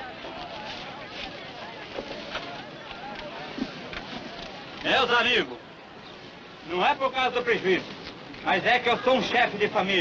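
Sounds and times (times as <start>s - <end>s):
crowd murmur of many voices: 0.0s - 10.0s.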